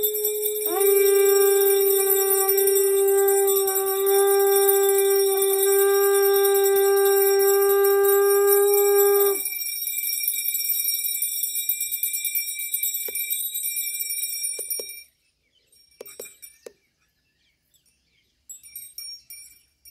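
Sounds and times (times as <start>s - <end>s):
conch shell blown: 0.0s - 9.4s
high ringing: 0.0s - 15.1s
faint clinks: 0.0s - 19.9s.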